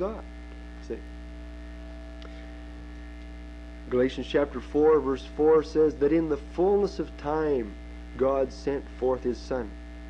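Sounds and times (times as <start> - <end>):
electrical mains hum: 0.0 - 10.0
faint steady tones: 0.0 - 10.0.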